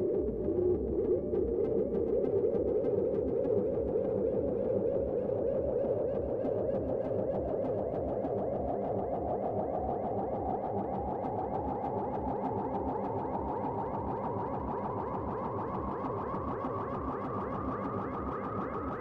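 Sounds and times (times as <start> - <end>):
pulsing ambient synthesizer music: 0.0 - 19.0.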